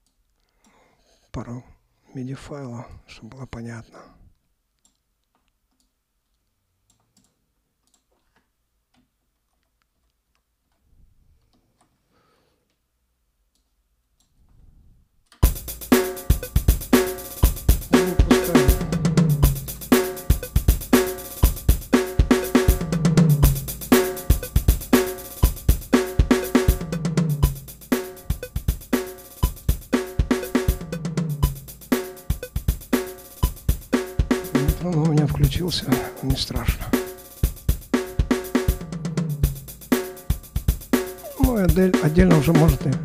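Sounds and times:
drum kit groove: 15.4s - 43.0s.

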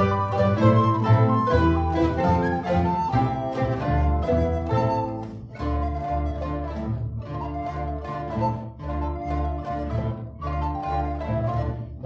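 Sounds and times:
mandolin and guitar orchestra: 0.0s - 12.0s.

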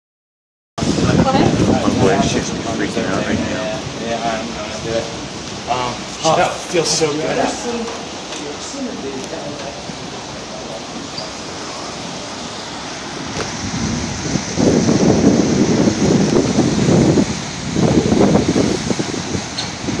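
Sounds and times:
rolling thunder rumble: 0.8s - 20.0s
steady rain: 0.8s - 20.0s.

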